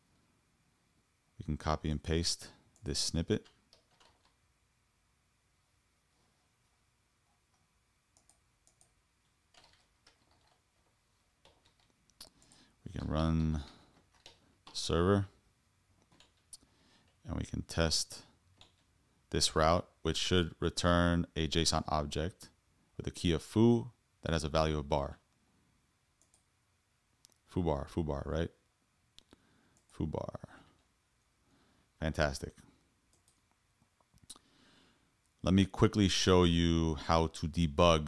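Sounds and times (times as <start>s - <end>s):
computer keyboard keystrokes: 3.4s - 4.4s, 8.2s - 10.6s, 11.4s - 12.6s, 14.0s - 14.8s, 16.0s - 16.5s
computer mouse clicks: 7.4s - 10.6s, 16.0s - 17.2s, 26.2s - 26.5s, 33.1s - 33.6s
mouse clicks: 7.5s - 9.0s.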